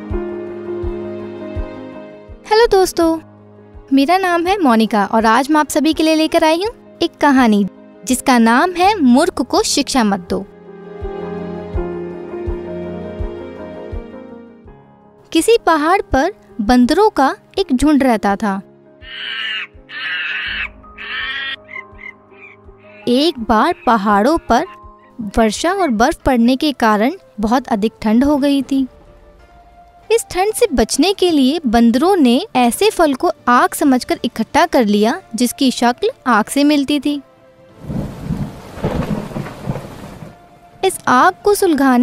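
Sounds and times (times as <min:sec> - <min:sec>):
soft background music: 0:00.0 - 0:42.0
monkeys screeching: 0:19.0 - 0:25.2
rain: 0:37.7 - 0:40.5
thunder rumbling: 0:37.7 - 0:40.6.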